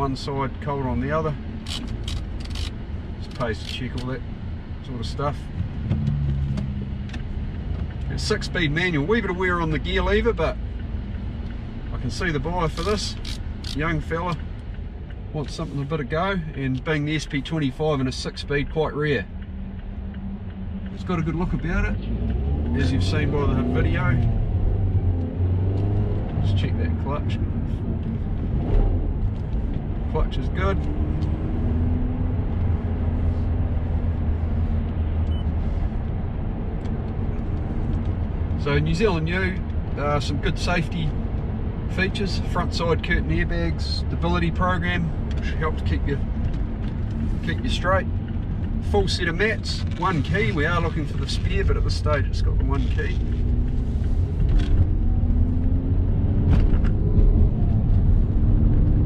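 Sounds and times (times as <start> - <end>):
car interior engine and road rumble: 0.0 - 59.0
faint engine tone: 35.2 - 35.9.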